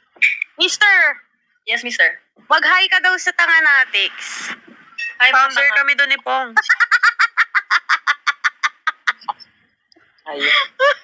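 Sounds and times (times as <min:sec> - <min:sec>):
woman laughing: 0:06.6 - 0:09.5, 0:10.4 - 0:11.0.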